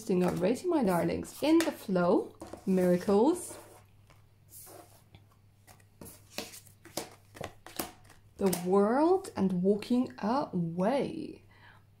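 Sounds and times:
cards sliding and tapping on table: 5.7 - 8.2.

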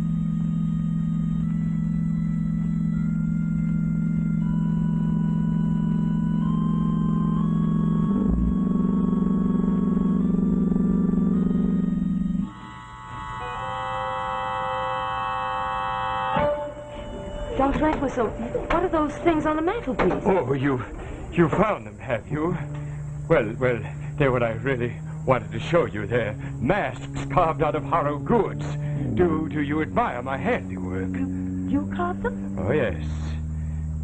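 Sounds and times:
organ music: 0.0 - 34.0.

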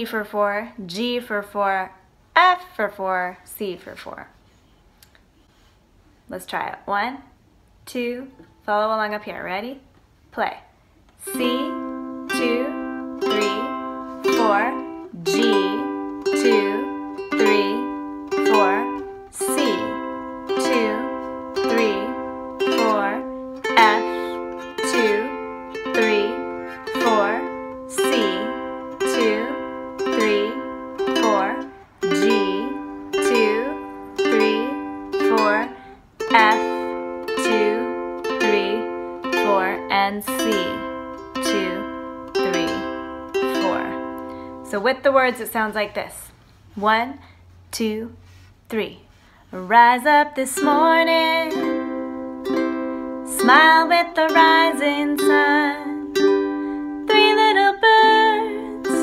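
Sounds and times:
ukulele strumming: 11.2 - 44.9, 50.0 - 59.0.

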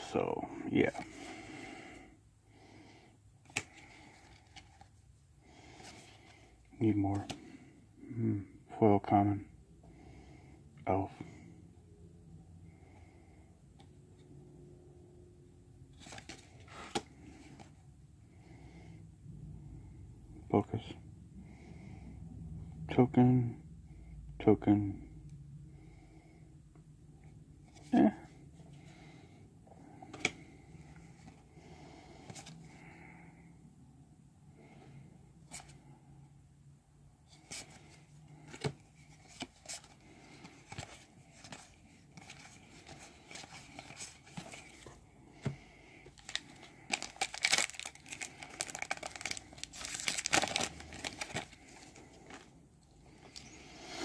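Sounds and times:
plastic wrapper tearing and crinkling: 46.2 - 51.8.

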